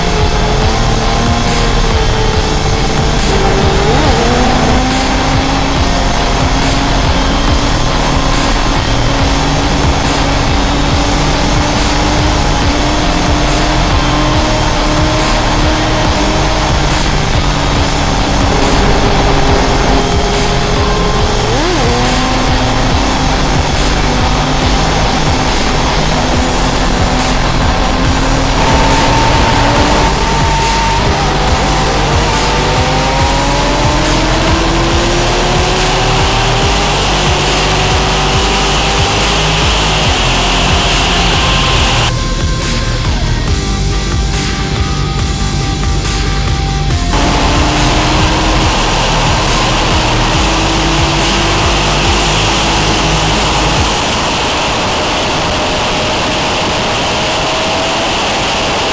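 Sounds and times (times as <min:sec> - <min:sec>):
motorcycle engine revving through gears: 0:00.0 - 0:58.9
wind noise: 0:00.0 - 0:58.9.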